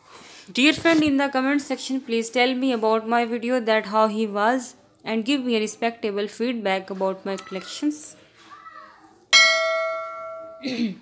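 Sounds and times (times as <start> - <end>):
bell chime ringing: 9.4 - 10.7.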